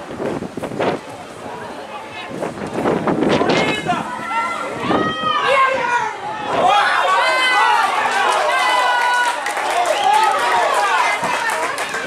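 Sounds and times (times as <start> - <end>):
people shouting and cheering: 3.3 - 12.0.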